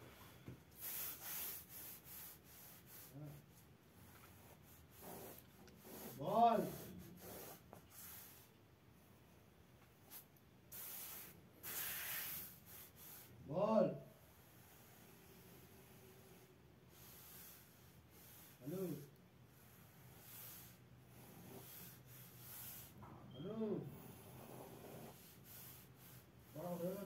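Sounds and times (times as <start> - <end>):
pencil scratching on paper: 0.8 - 8.5, 19.5 - 23.0, 24.0 - 27.0.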